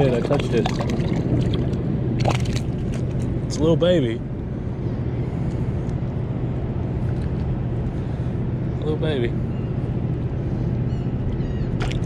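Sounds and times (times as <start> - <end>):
short water splashes: 0.0 - 3.3
water sloshing: 0.0 - 3.4, 11.8 - 12.0
steady low hum: 0.0 - 12.0.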